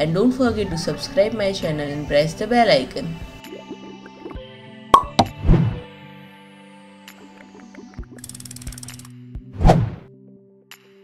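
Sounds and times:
cartoon pop sound effects: 4.9s - 5.8s.

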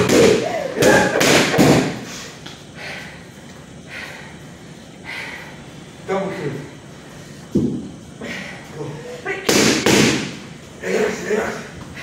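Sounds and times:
boxing gloves punching mitts: 0.0s - 2.0s, 9.5s - 10.4s.

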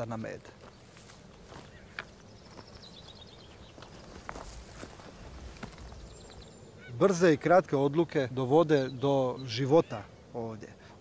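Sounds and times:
footsteps on stony ground: 0.0s - 6.5s.

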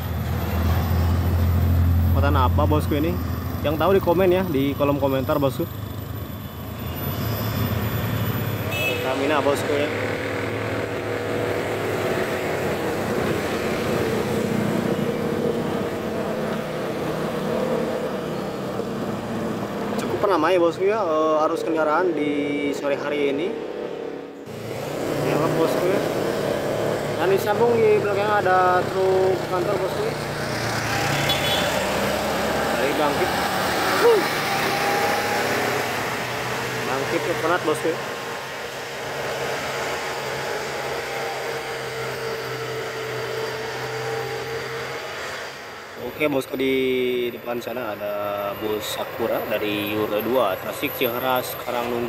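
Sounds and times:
car traffic: 0.0s - 52.0s
truck diesel engine passing: 0.0s - 52.0s.

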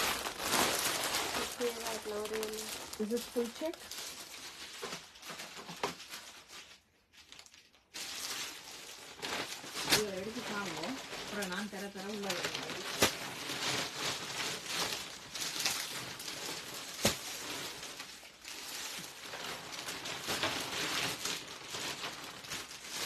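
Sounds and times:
plastic packaging crinkling: 0.0s - 23.0s.

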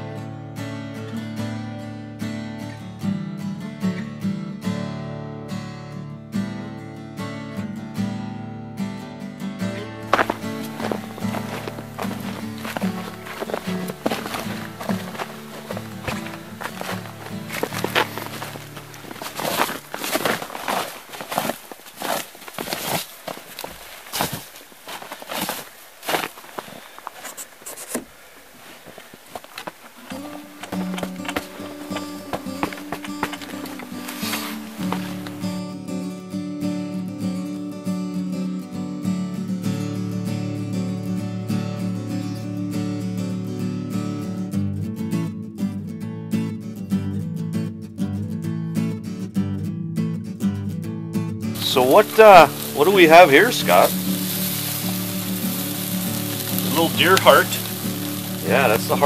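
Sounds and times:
acoustic guitar music: 0.0s - 59.0s
footsteps: 9.8s - 35.6s, 51.6s - 59.0s.

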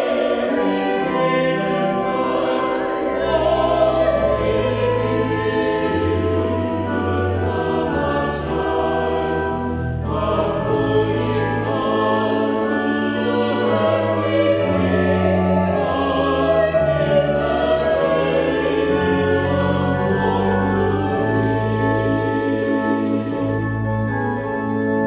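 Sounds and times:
church choir singing: 0.0s - 25.0s.

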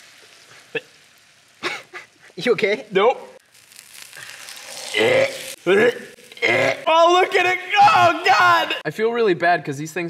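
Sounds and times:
food sizzling on hot iron: 0.0s - 8.8s
person exclaiming: 4.9s - 8.8s.

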